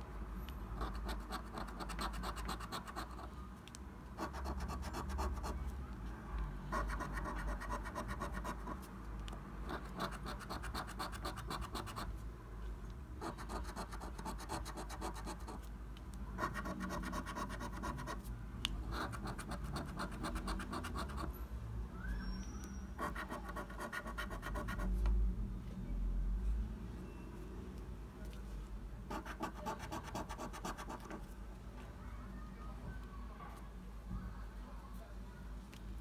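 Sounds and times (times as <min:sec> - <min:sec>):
coin scratching scratch card: 0:00.8 - 0:03.3, 0:04.2 - 0:05.6, 0:06.7 - 0:08.8, 0:09.7 - 0:12.1, 0:13.2 - 0:15.6, 0:16.4 - 0:18.2, 0:18.9 - 0:21.3, 0:23.0 - 0:24.9, 0:29.1 - 0:31.2.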